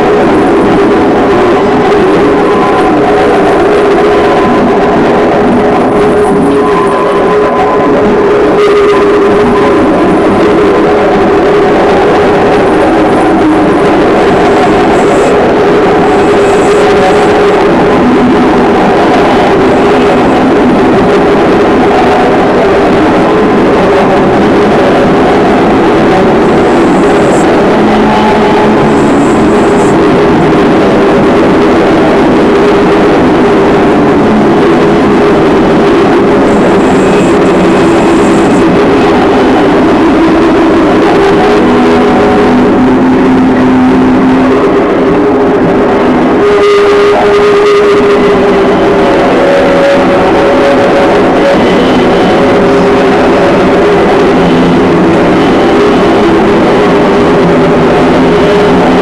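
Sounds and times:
distorted noise music: 0:00.0 - 0:59.0
droning tones: 0:00.0 - 0:59.0.

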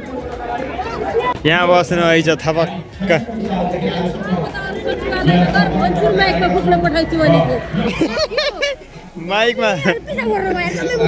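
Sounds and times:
crowd chatter: 0:00.0 - 0:11.0
people talking close by: 0:00.0 - 0:11.0.

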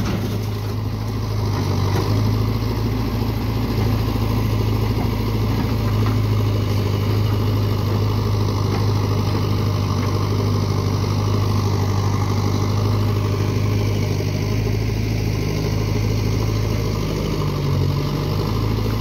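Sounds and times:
diesel engines running at low revs: 0:00.0 - 0:19.0.

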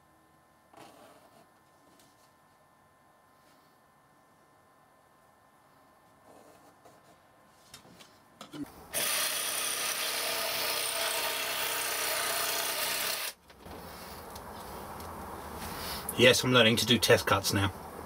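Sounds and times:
jigsaw cutting plywood: 0:08.9 - 0:13.4.

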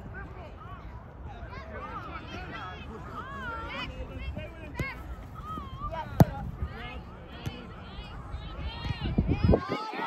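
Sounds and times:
people calling and shouting: 0:00.0 - 0:10.0.

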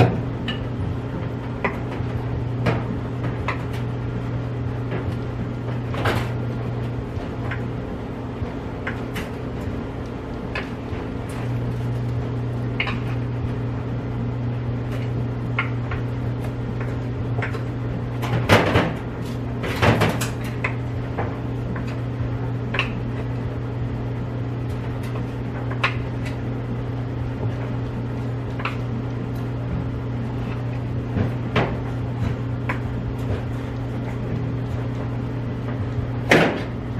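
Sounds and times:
clothes dryer humming: 0:00.0 - 0:36.9.

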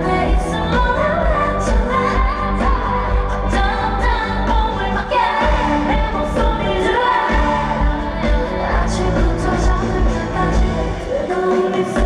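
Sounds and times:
pop backing track: 0:00.0 - 0:12.0
woman singing into microphone: 0:00.0 - 0:12.0.

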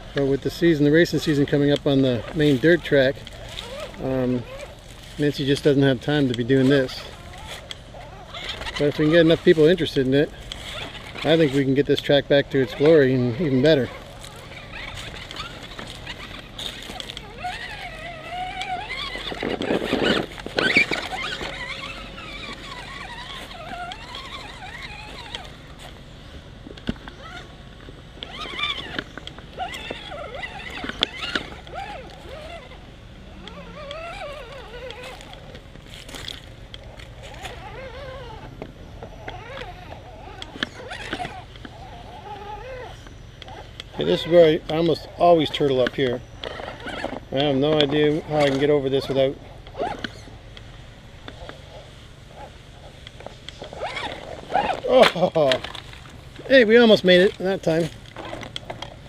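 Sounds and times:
small electric motor whining: 0:00.0 - 0:59.0.

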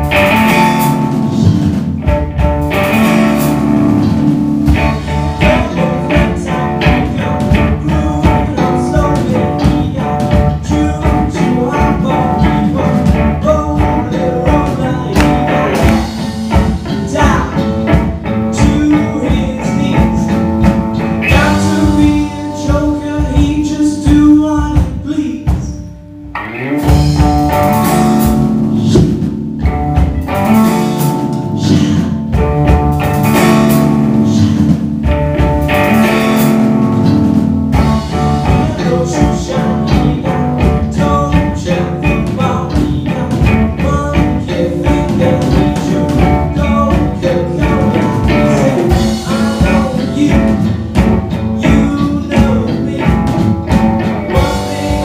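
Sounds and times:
live rock band playing: 0:00.0 - 0:55.0
male singer: 0:00.7 - 0:01.9, 0:04.8 - 0:26.0, 0:27.8 - 0:29.3, 0:31.4 - 0:32.2, 0:33.6 - 0:34.8, 0:37.7 - 0:55.0.

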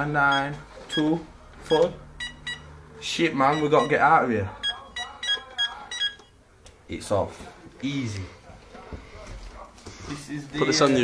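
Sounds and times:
alarm keypad beeping: 0:00.2 - 0:06.4, 0:10.5 - 0:11.0.

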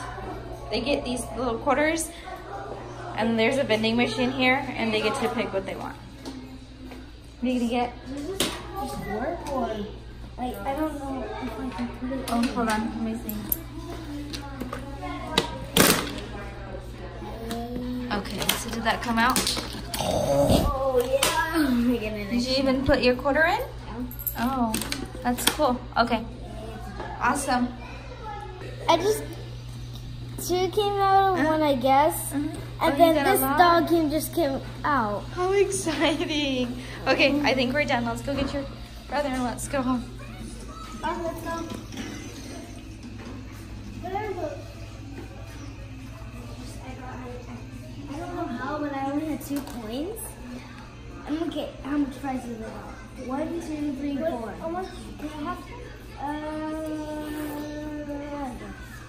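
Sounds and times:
indistinct voices: 0:19.3 - 0:21.8.

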